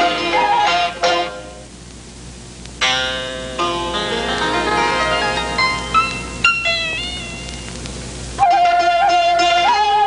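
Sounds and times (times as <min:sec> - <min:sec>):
plucked string melody: 0:00.0 - 0:01.7, 0:02.8 - 0:10.0.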